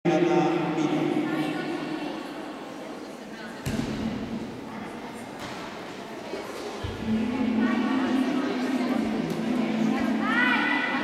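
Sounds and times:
voices echoing in hall: 0.1s - 11.0s.

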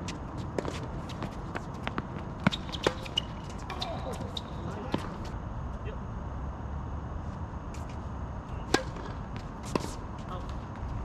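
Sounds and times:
tennis racket hitting ball: 8.7s - 10.0s.

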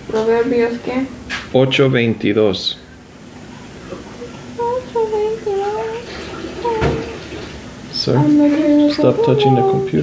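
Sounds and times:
knock on recording device: 6.8s - 7.1s.

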